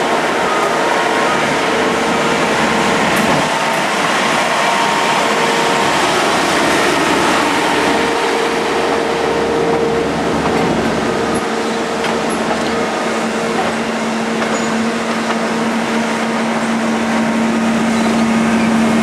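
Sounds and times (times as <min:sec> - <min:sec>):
track machine engines droning: 0:00.0 - 0:19.0.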